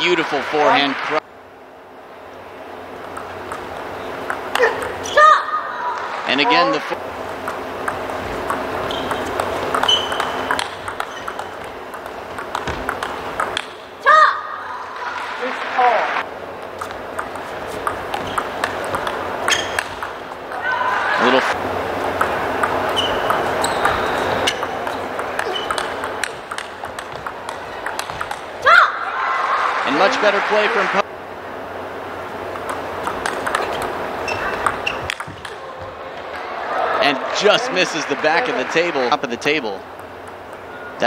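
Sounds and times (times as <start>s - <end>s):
crowded hall noise: 0.0s - 41.0s
table tennis ball clicking: 3.0s - 5.0s, 7.2s - 13.9s, 16.7s - 20.6s, 22.1s - 28.6s, 32.5s - 35.6s, 39.9s - 40.9s
short shouts: 4.6s - 6.2s.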